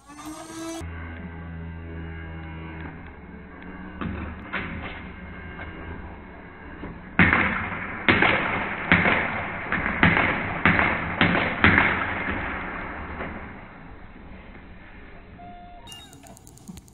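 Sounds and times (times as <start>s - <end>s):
blaster motors whirring: 0.0s - 0.8s
dart blaster shots: 7.1s - 13.7s.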